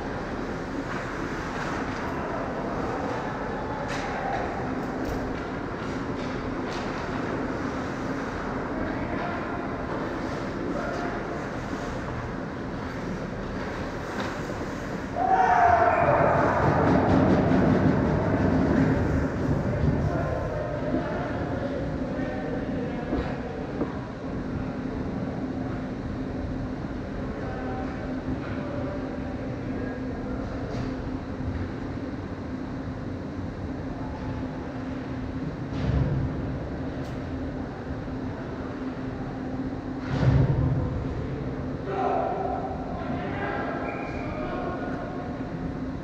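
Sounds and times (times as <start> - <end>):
arena rumble: 0.0 - 46.0
crowd cheering and shouting: 15.2 - 18.3.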